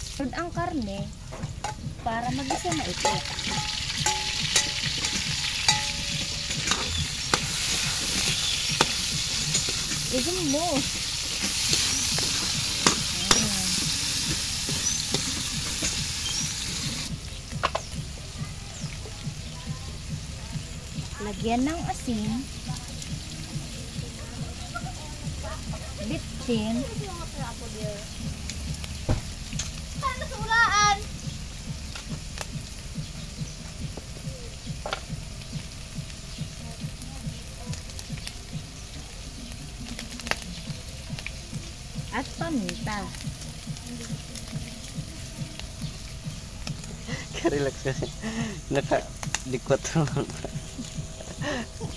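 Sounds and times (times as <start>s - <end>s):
meat sizzling in a wok: 0.0s - 51.9s
oil popping: 0.0s - 51.9s.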